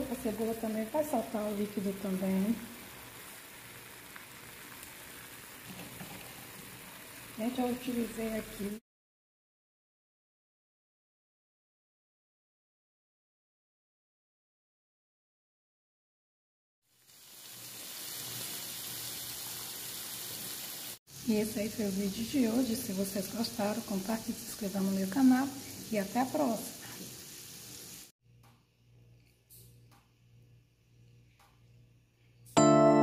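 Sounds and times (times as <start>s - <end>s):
liver and onions sizzling in pan: 0.0s - 8.8s, 16.9s - 28.1s.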